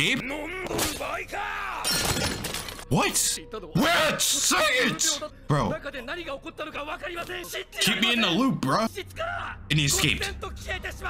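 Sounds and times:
dialogue: 0.0s - 11.0s
shattering crash: 1.8s - 2.9s.

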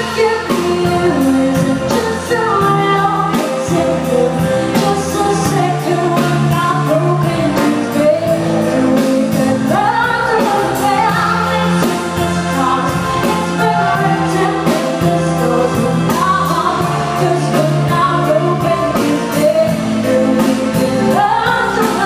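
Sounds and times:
drum kit beat: 0.0s - 22.0s
electric guitar: 0.0s - 22.0s
woman singing: 0.0s - 22.0s.

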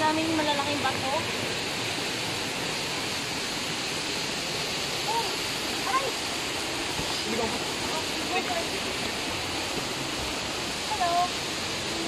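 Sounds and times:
water rushing in a stream: 0.0s - 12.0s.

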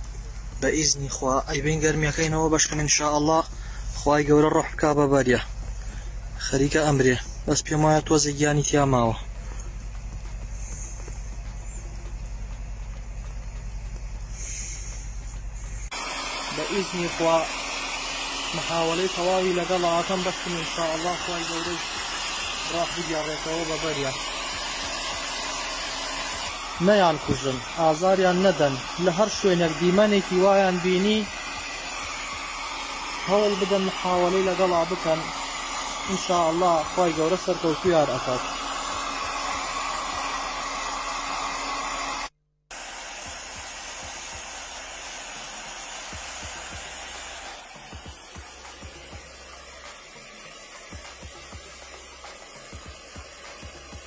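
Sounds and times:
hair dryer blowing: 0.0s - 54.0s.

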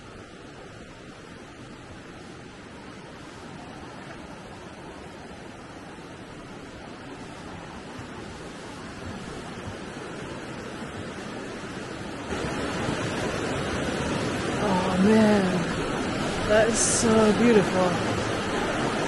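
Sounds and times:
river rushing: 0.0s - 19.0s.

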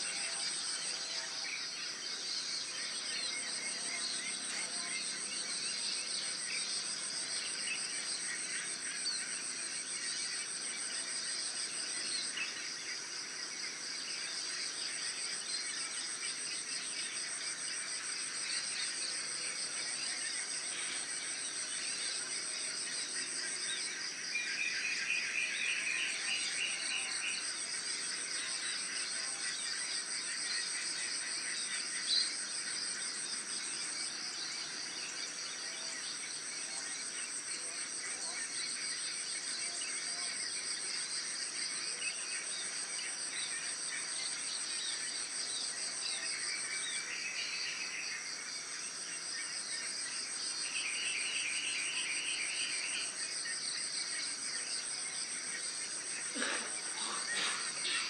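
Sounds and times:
crickets trilling: 0.3s - 58.0s.

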